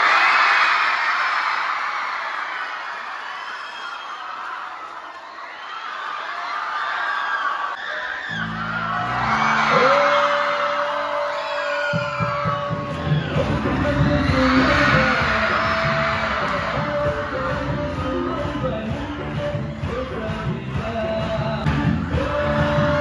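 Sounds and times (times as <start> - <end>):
children cheering and whooping: 0.0 - 17.4
music with heavy bass: 12.7 - 23.0.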